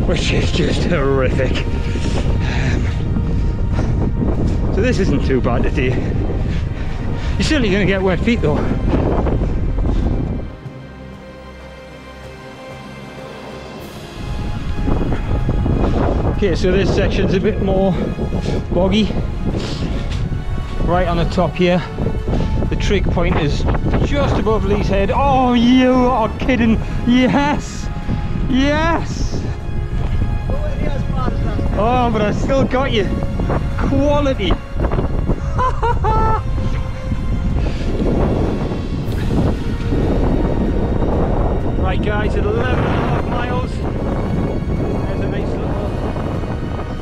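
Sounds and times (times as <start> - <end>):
background music: 0.0 - 47.0
wind rumbling on microphone: 0.0 - 47.0.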